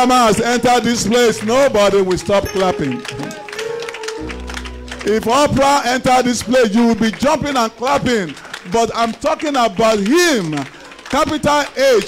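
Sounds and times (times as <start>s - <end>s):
held instrument notes: 0.0s - 6.6s
congregation clapping along: 0.0s - 12.0s.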